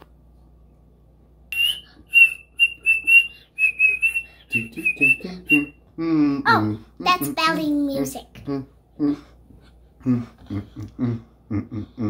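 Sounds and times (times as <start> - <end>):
child whistling short notes: 1.6 - 4.7.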